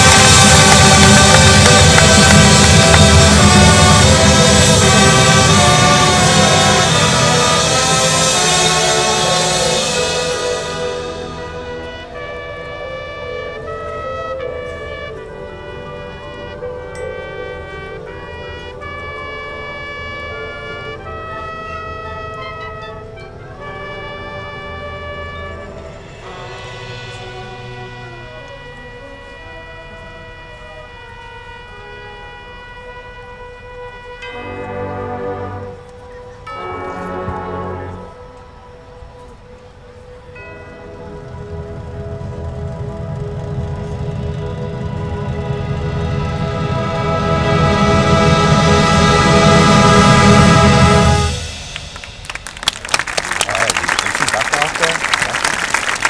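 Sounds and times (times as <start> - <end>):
marching band playing: 0.0 - 56.0.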